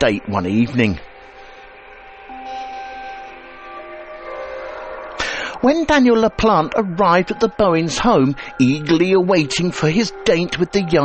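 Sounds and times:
soft background music chords: 0.0 - 11.0.

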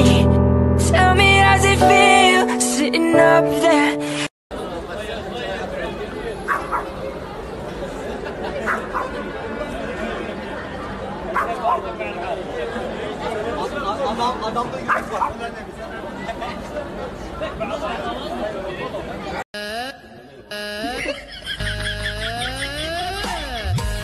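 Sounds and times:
murmur of people chattering: 4.5 - 19.4
dog barking: 6.5 - 7.0, 11.3 - 11.8, 14.9 - 15.4.

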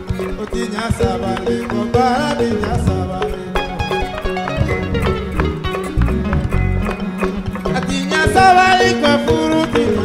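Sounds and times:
hand percussion: 0.0 - 10.0
plucked and struck melody: 0.0 - 10.0
electric bass: 1.0 - 8.7.

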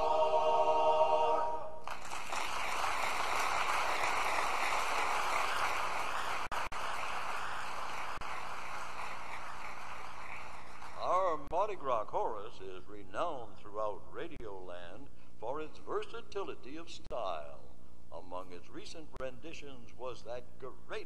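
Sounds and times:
men's chorus holding a chord: 0.0 - 1.8
audience applause: 1.8 - 11.4.

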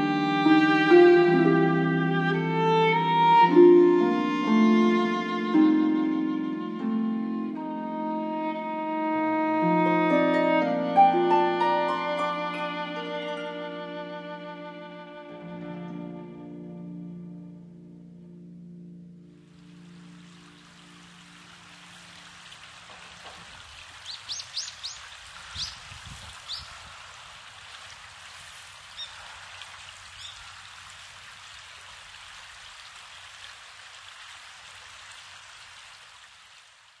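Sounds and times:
river water flowing: 0.0 - 16.3, 19.2 - 37.0
bird chirps: 24.0 - 26.8, 29.0 - 29.2, 30.2 - 30.5.

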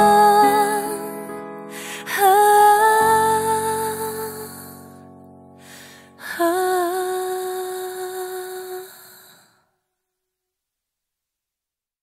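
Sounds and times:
pop ballad accompaniment: 0.0 - 8.8.

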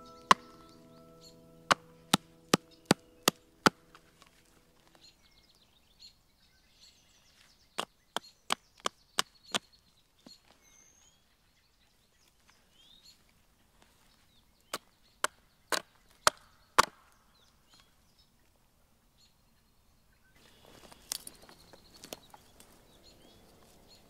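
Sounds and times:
faint birdsong: 0.0 - 24.0
blade chopping into wood: 15.2 - 17.0.

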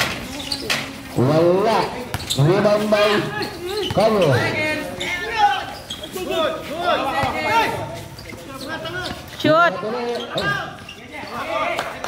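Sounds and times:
people talking and calling out: 0.0 - 12.0
basketball bouncing on hard court: 2.0 - 2.6, 3.4 - 4.5, 7.1 - 7.5.

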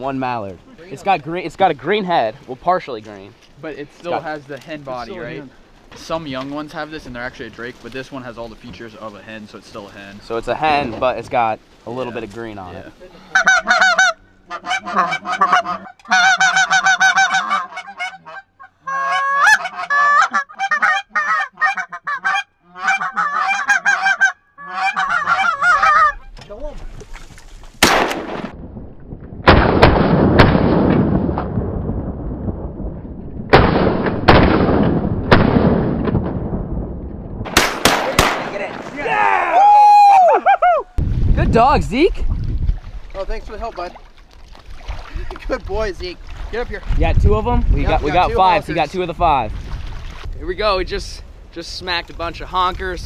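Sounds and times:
geese honking: 13.2 - 26.4
shotgun blasts: 27.8 - 28.7, 29.4 - 31.6, 33.5 - 36.8, 37.4 - 38.9.

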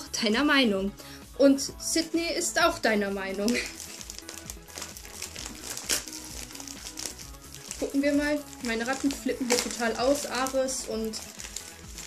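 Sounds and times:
soft background music: 0.0 - 12.0
wrapping paper crinkling: 3.4 - 12.0.

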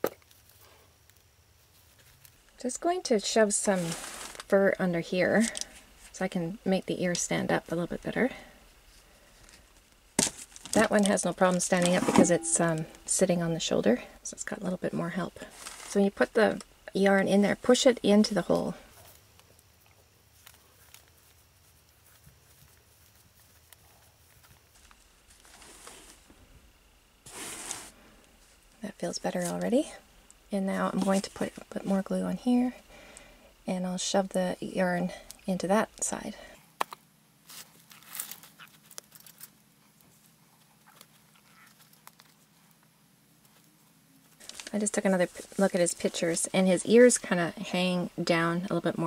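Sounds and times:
hands rustling fur and yarn: 3.4 - 4.7.

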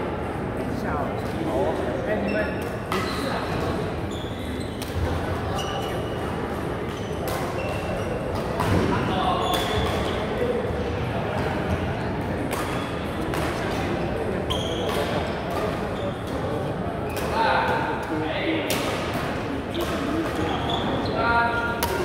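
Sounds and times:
voices in echoing hall: 0.0 - 22.0
shoe squeaks on court floor: 2.2 - 3.4, 4.0 - 6.3, 6.9 - 8.2, 9.3 - 10.4, 14.4 - 16.4, 19.7 - 21.8
rackets hitting shuttlecock: 12.4 - 13.9, 17.1 - 20.5, 21.8 - 22.0.

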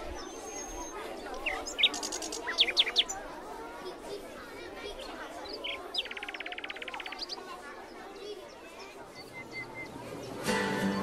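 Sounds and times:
small birds chirping: 0.0 - 3.5, 4.8 - 10.4.

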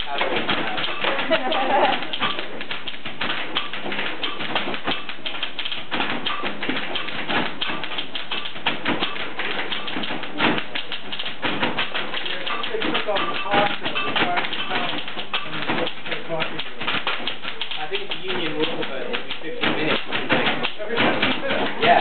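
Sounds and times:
typewriter keys clattering: 0.0 - 22.0.

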